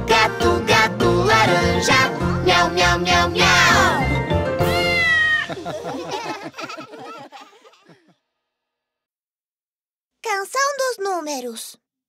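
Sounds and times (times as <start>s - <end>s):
children's song music: 0.0s - 5.4s
cartoon cat meowing: 4.7s - 5.5s.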